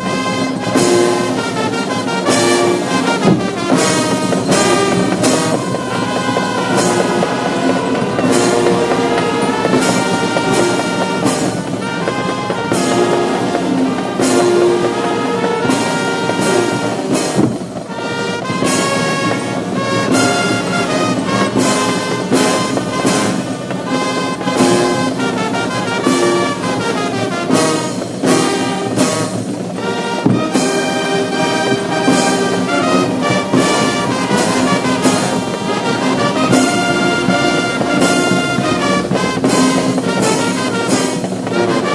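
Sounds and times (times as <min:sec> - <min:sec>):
brass band playing a march: 0:00.0 - 0:41.9.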